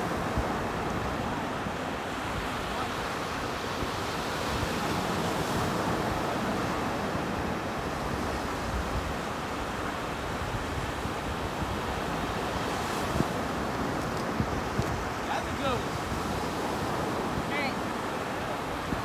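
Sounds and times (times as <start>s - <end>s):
ocean surf: 0.0s - 19.0s
wind buffeting microphone: 0.0s - 19.0s.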